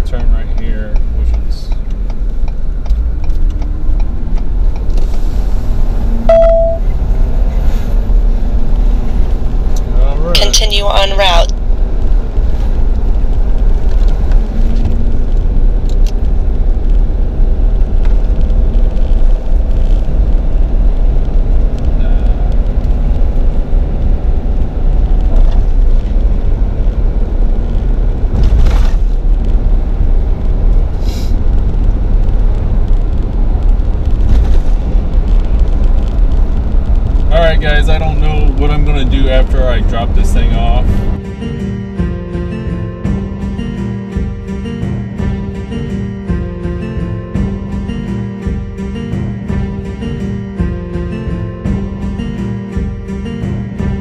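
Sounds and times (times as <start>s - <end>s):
road and engine rumble: 0.0s - 54.0s
short wavering pitched sound: 6.3s - 6.9s.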